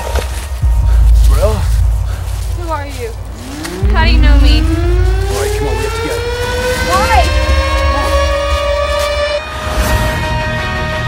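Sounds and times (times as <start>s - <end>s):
low rumble: 0.0s - 9.8s
rising soundtrack tone: 0.6s - 10.3s.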